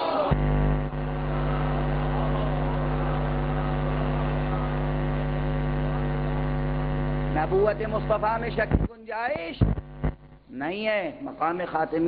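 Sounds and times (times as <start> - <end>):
loud electrical hum: 0.0 - 12.0.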